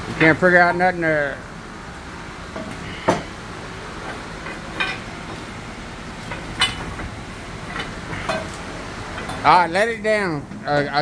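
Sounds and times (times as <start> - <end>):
workshop background noise: 0.0 - 11.0
metal tools clinking and knocking: 4.4 - 5.1, 6.3 - 7.1.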